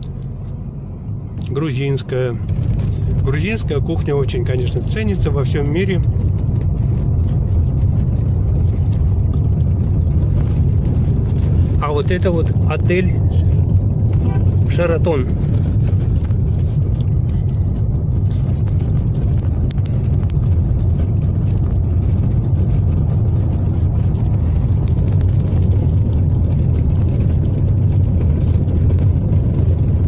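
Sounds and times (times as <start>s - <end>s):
car engine and tyre noise: 0.0s - 30.0s.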